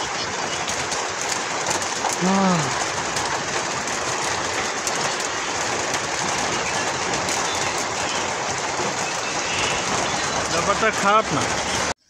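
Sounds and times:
heavy rain: 0.0s - 12.0s.

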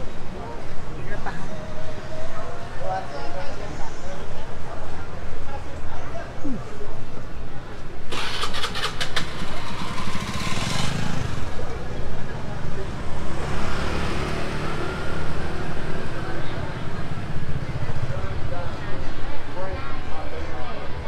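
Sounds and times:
scooter engine revving: 8.1s - 11.7s
scooter engines running: 8.1s - 18.8s.

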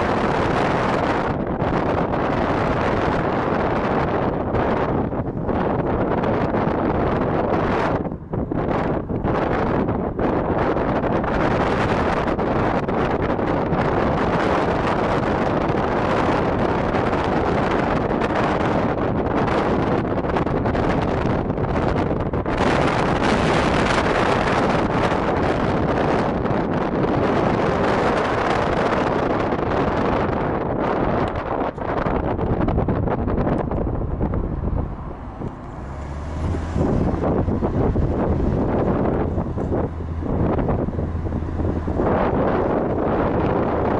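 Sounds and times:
road and engine noise: 0.0s - 43.9s
wind rushing over microphone: 0.0s - 43.9s.

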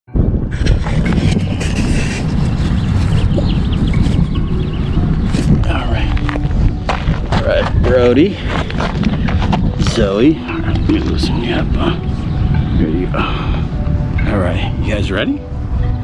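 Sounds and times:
steady low rumble: 0.1s - 16.0s
voices outdoors: 4.4s - 15.9s.

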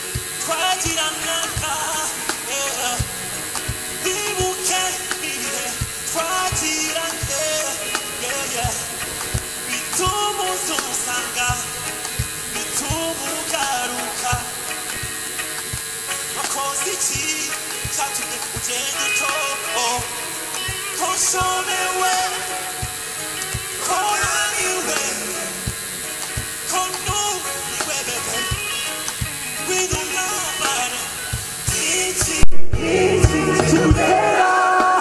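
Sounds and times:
keyboard and guitar: 0.0s - 35.0s
person singing: 0.0s - 35.0s
bass drum beat: 3.0s - 4.6s, 5.8s - 7.4s, 8.6s - 10.2s, 11.5s - 13.2s, 14.3s - 15.9s, 31.3s - 34.2s
live band music: 17.4s - 35.0s.

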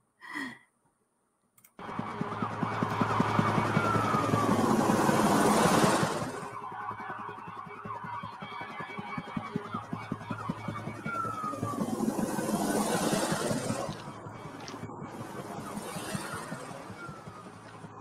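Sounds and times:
fast even pulses: 1.8s - 18.0s
whooshes with falling tone: 2.9s - 6.6s, 11.0s - 17.8s.

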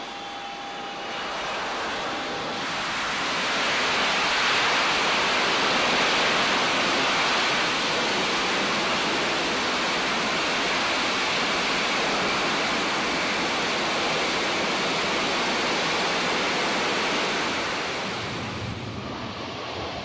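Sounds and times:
jet engine noise: 0.0s - 20.0s.

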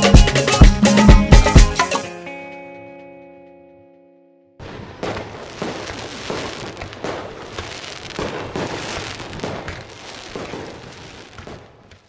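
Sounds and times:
irregular bangs and crackles: 4.6s - 12.0s.

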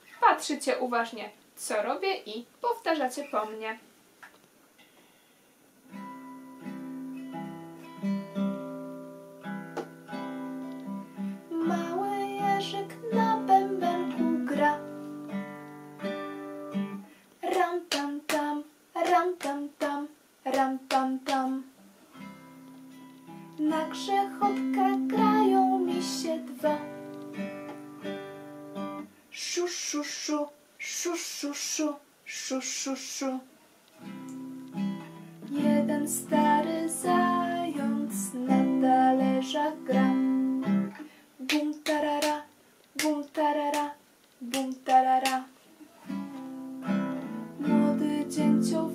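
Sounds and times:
classical guitar strumming: 5.9s - 17.6s, 22.1s - 29.1s, 34.0s - 41.1s, 46.0s - 48.9s
woman singing: 11.5s - 15.0s, 17.4s - 21.7s, 23.6s - 27.0s, 29.4s - 33.4s, 35.5s - 45.6s, 47.6s - 48.9s.

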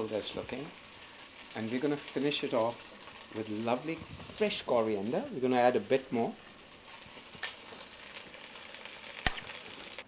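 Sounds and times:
chicken sizzling in a wok: 0.0s - 10.0s
metal spoon clicking: 9.3s - 9.5s.

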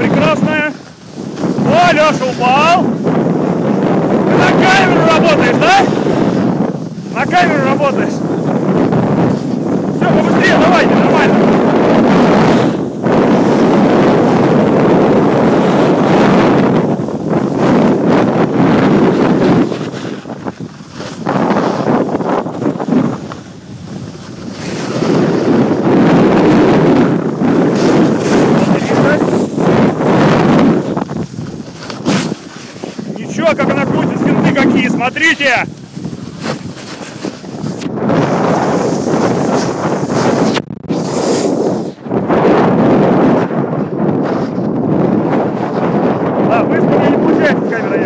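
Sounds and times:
snow scraping underfoot: 0.0s - 14.6s, 16.8s - 42.6s
wind buffeting microphone: 0.0s - 48.0s.

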